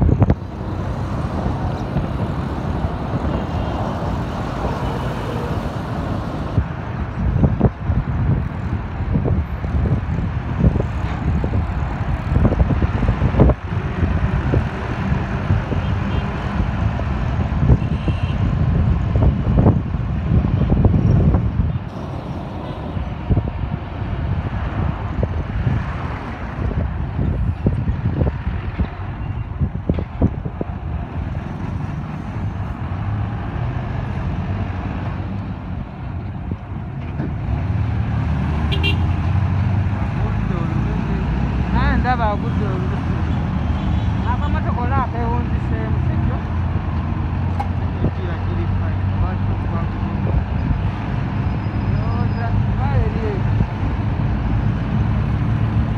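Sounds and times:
truck engine: 0.0 - 17.8, 18.5 - 55.9
low traffic rumble: 0.0 - 55.9
minibus engine: 0.0 - 55.9.

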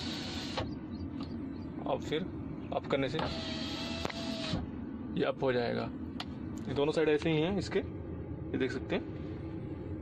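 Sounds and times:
power window motor whine: 0.0 - 0.8, 3.2 - 4.7.

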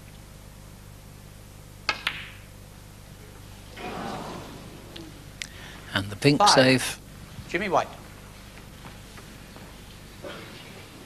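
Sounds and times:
low steady hum: 0.0 - 11.0
cue tip striking ball: 1.9 - 2.5.

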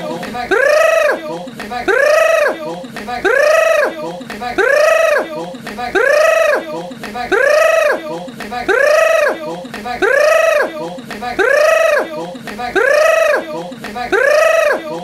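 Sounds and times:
person's high-pitched vocal cry: 0.4 - 4.0, 4.6 - 15.0.

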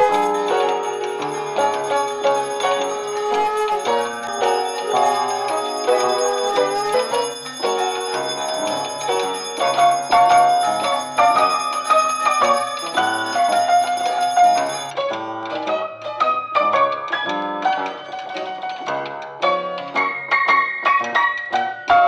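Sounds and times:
bell ringing: 0.0 - 15.0
melodic music: 0.0 - 17.1.

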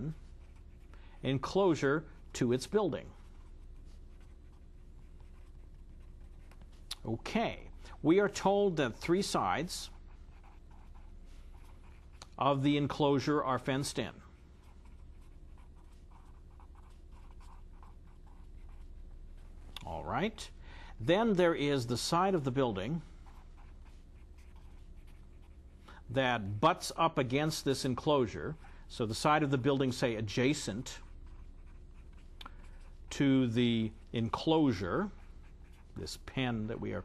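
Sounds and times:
steady low hum: 0.0 - 37.0
marker writing on paper: 3.1 - 6.8, 9.2 - 12.2, 14.6 - 19.1, 23.2 - 25.8, 29.6 - 33.2, 34.7 - 36.2.

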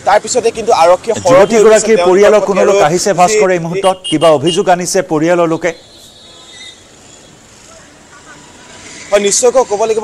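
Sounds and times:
low hum of road traffic: 0.0 - 10.0.

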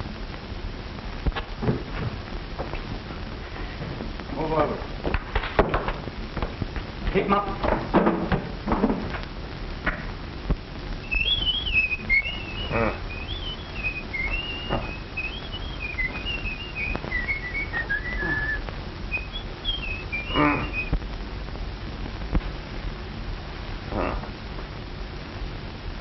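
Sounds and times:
person whistling a tune: 11.0 - 20.9.

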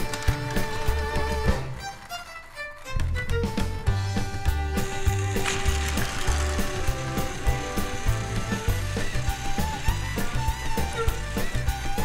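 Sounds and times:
toy train motors rattling: 0.0 - 2.8, 4.3 - 12.0
background music with beat: 0.0 - 12.0.

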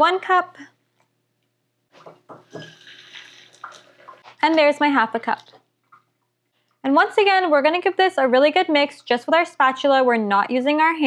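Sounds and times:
faucet water filling metal cup: 2.4 - 4.2.

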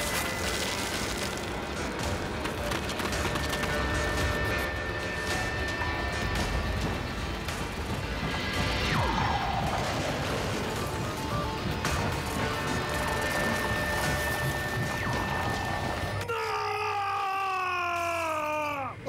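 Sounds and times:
crashing and rumbling effects: 0.0 - 16.3.

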